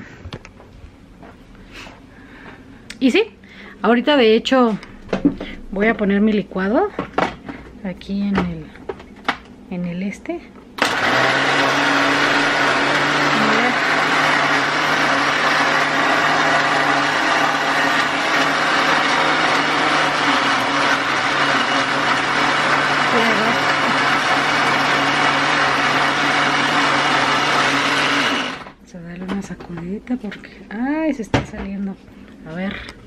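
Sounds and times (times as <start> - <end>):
electric blender running: 10.8 - 28.8.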